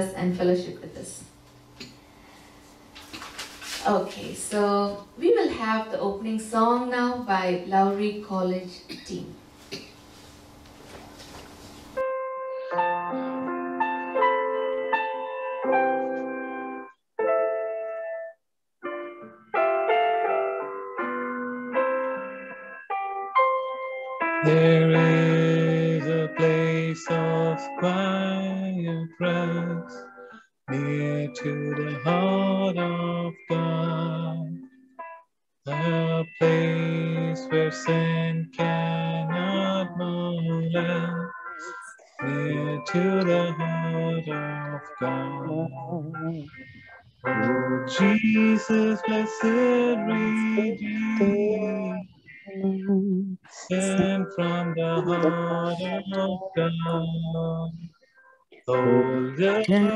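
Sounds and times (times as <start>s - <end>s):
keyboard accompaniment: 9.4s - 59.9s
man singing a hymn: 24.4s - 30.1s, 30.7s - 34.6s, 35.7s - 46.5s, 47.3s - 52.2s, 52.8s - 57.9s, 58.7s - 59.9s.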